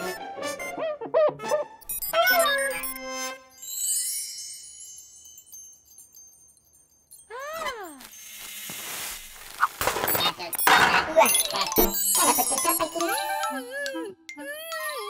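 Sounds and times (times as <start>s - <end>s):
robot chatter: 1.9s - 3.1s, 10.1s - 13.7s
twinkling chime: 1.9s - 8.9s, 11.1s - 15.0s
crackling and tinkling ice: 1.9s - 15.0s
squeaky cartoon voice: 2.0s - 3.4s, 10.1s - 15.0s
hiss of freezing air: 8.0s - 9.8s.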